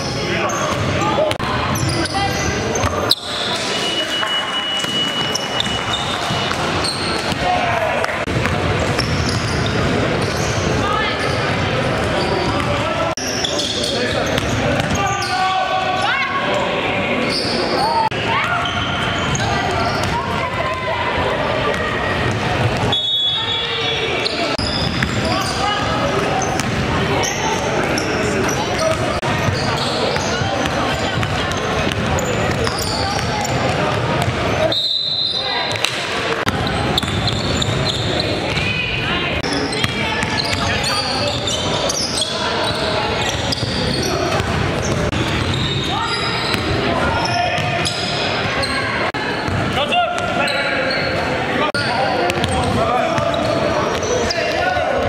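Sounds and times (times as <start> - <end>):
players calling out: 0.0 - 55.0
basketball bouncing on court: 0.6 - 2.0, 8.2 - 10.7, 21.7 - 23.0, 24.6 - 25.6, 26.4 - 26.9, 28.7 - 34.5, 35.7 - 38.8, 39.4 - 40.7, 43.2 - 46.8, 49.4 - 50.3, 52.3 - 54.6.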